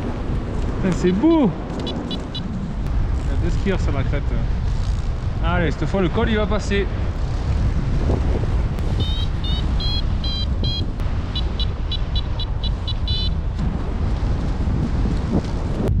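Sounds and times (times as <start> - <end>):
wind on microphone: 0.0 - 16.0
variometer beeping: 1.8 - 2.5, 8.8 - 13.4.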